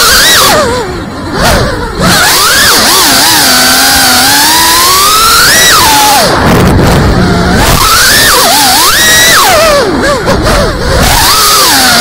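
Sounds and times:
drone motors whining: 0.0s - 12.0s.

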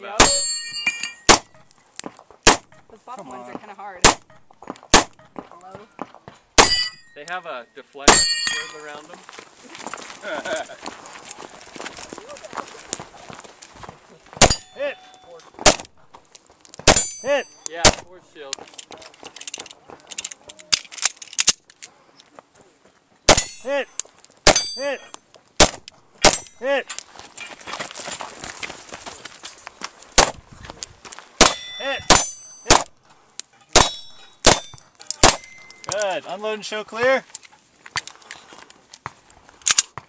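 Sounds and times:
pistol shots: 1.2s - 1.6s, 2.4s - 2.8s, 4.0s - 5.3s, 6.6s - 7.0s, 14.4s - 14.7s, 15.6s - 15.9s, 16.8s - 17.2s, 17.8s - 18.1s, 23.3s - 23.6s, 24.4s - 24.8s, 25.6s - 26.5s, 30.2s - 30.4s, 31.4s - 32.9s, 33.7s - 35.6s
pistol action metallic clicks: 19.3s - 21.9s, 39.6s - 40.0s.

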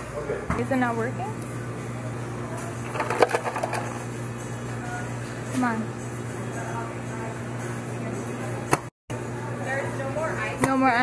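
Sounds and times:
steady low hum: 0.0s - 11.0s
ice dispenser clicking and clattering: 2.9s - 4.0s.

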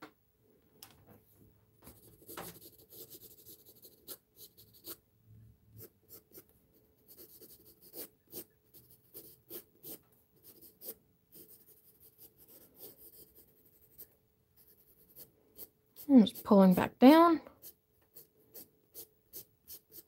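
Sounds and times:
pencil scratching on paper: 1.8s - 5.0s, 5.8s - 20.0s.

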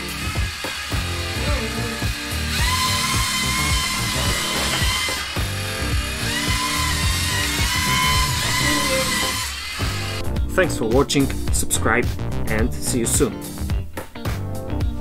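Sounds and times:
robot motors whining: 0.0s - 10.2s
background music with steady beat: 0.0s - 15.0s.

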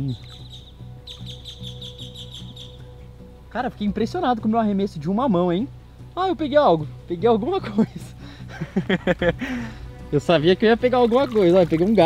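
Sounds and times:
bird chirping rapidly: 0.0s - 2.9s
faint background music: 0.0s - 12.0s.

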